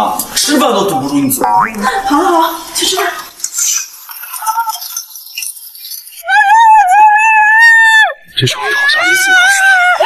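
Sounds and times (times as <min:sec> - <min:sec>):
woman screaming: 0:06.2 - 0:10.0.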